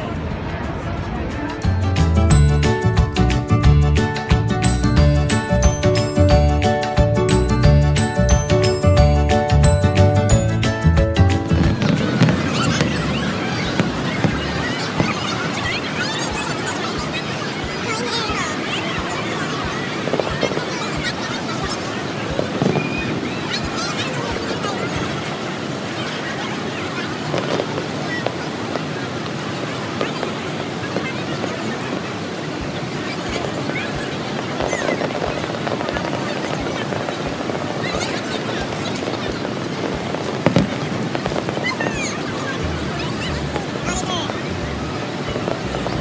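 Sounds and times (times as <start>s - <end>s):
crowd chattering and calling out: 0.0s - 46.0s
steady rushing noise: 0.0s - 46.0s
waterfall roaring: 0.0s - 46.0s
firework bang: 39.9s - 42.0s.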